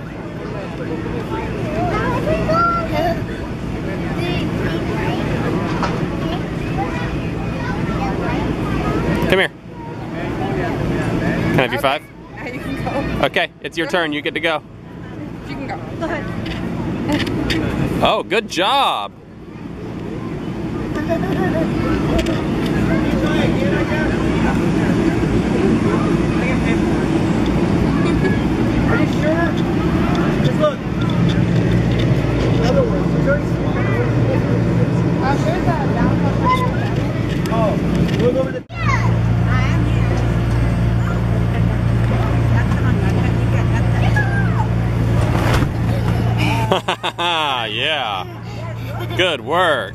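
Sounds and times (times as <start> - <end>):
children shouting and chattering: 0.0 - 18.0, 19.3 - 45.2, 45.8 - 49.9
electric blower fan humming: 0.0 - 49.9.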